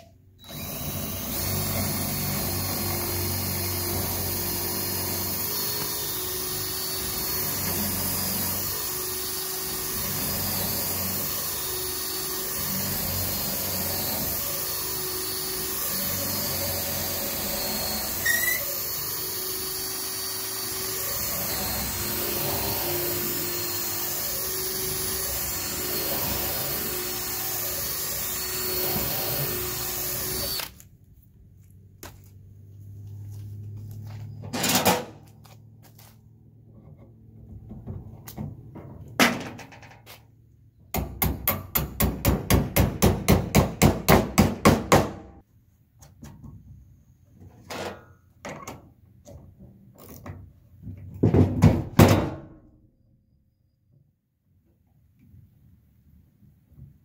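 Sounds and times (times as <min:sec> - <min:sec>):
cordless drill boring wood: 0:00.4 - 0:30.8
high squeak: 0:18.1 - 0:18.8.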